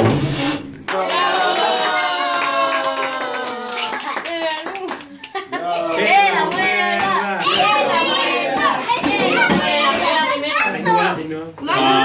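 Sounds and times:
small group clapping: 0.8 - 7.2.

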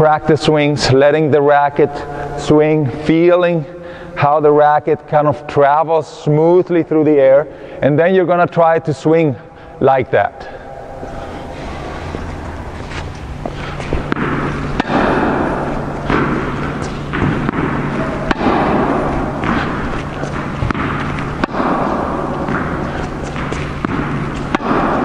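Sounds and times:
steady low hum: 0.0 - 25.0
tennis racket hitting ball: 11.5 - 25.0.

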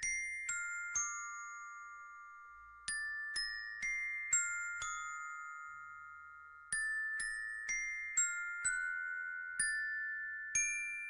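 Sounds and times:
glockenspiel-like bell notes: 0.0 - 11.0.

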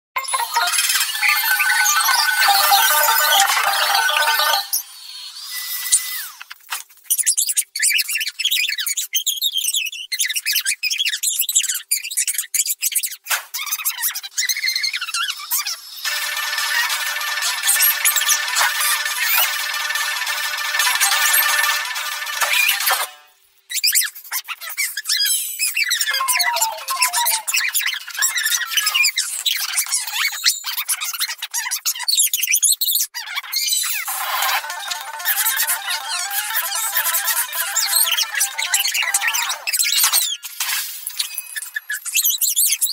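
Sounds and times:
sped-up squeaky cartoon voices: 0.2 - 6.4, 23.7 - 40.4.

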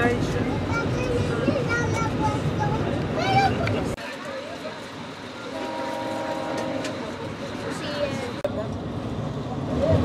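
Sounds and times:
moving train noise: 0.0 - 10.0
locomotive horn: 5.5 - 7.2.

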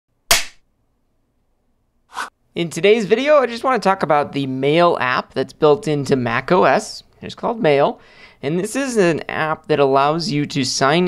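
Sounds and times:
sharp smack: 0.3 - 0.6.

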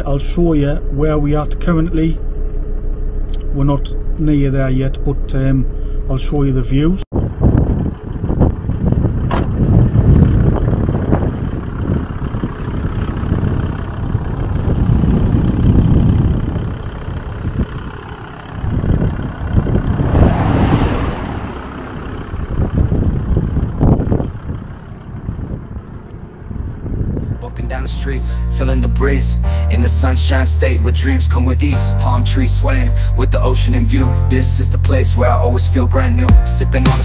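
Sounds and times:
wind buffeting microphone: 7.1 - 27.4.

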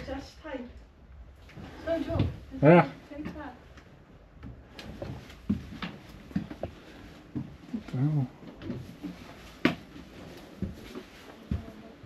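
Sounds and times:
soft footsteps on debris: 4.4 - 12.0.

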